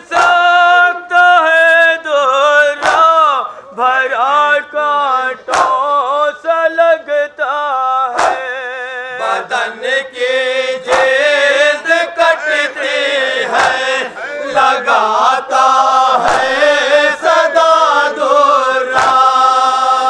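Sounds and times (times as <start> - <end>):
men chanting into a microphone: 0.0 - 20.0
hands slapping chests: 0.1 - 0.6, 2.7 - 3.4, 5.4 - 5.9, 8.1 - 8.6, 10.8 - 11.4, 13.4 - 14.1, 16.1 - 16.7, 18.8 - 20.0.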